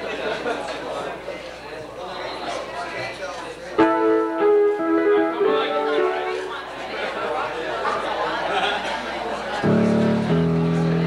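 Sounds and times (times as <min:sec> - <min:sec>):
background chatter: 0:00.0 - 0:11.0
instrument playing held chords: 0:03.8 - 0:06.8.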